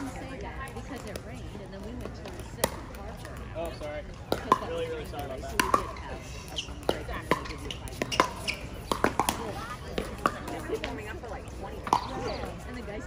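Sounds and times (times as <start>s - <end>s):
paddles striking balls: 0.0s - 12.8s
faint voices: 0.0s - 13.0s.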